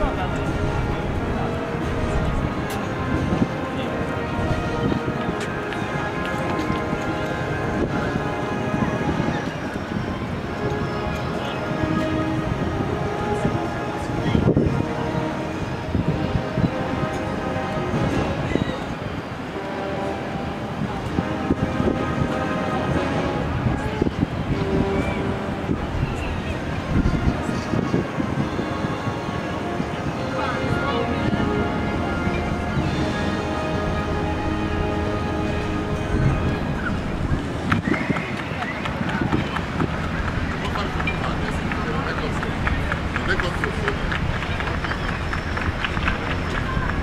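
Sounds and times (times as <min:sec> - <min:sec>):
steady low rumble: 0:00.0 - 0:18.4, 0:31.2 - 0:47.0
people talking: 0:00.0 - 0:47.0
ship engines droning: 0:00.0 - 0:47.0
wind on microphone: 0:00.0 - 0:47.0.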